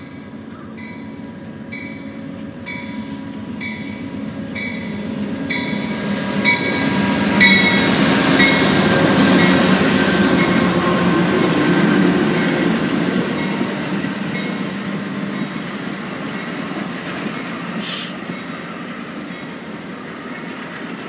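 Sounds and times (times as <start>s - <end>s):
locomotive bell ringing: 0.0s - 11.3s, 12.3s - 17.7s
diesel locomotive passing: 0.0s - 21.0s.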